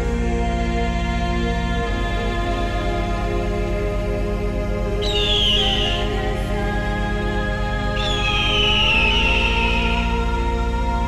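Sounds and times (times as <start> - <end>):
ambient music: 0.0 - 11.0
low drone: 4.8 - 11.0
bird of prey screeching: 5.0 - 6.2, 8.0 - 10.2.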